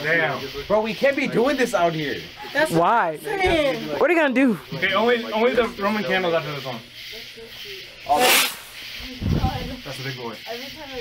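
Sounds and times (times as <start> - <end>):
firework hiss: 5.7 - 11.0.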